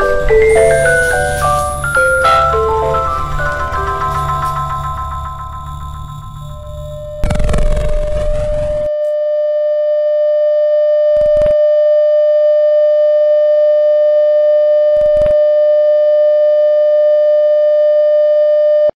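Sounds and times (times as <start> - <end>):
distorted glitch noise: 0.0 - 8.9
steady electronic tone: 0.0 - 9.0.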